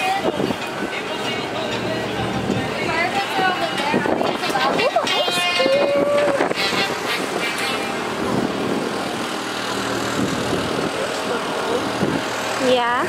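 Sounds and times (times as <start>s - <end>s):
low engine hum: 0.0s - 13.0s
street noise: 0.0s - 13.0s.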